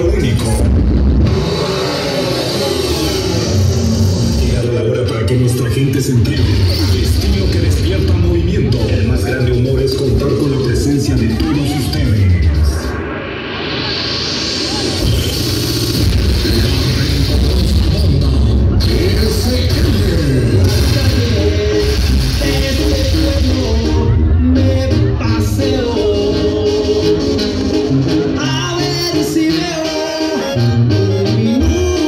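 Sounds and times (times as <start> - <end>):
loud live concert music: 0.0 - 32.0.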